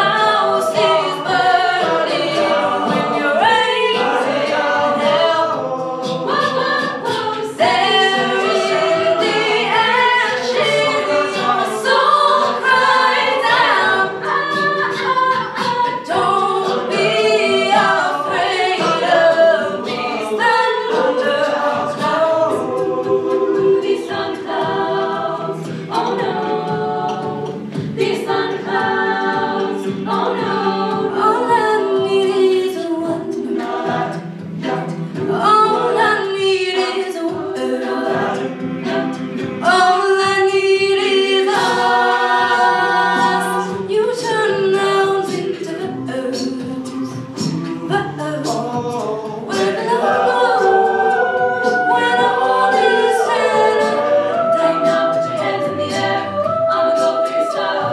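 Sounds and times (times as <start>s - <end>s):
a cappella group singing: 0.0s - 57.9s
lead voice singing: 0.0s - 57.9s.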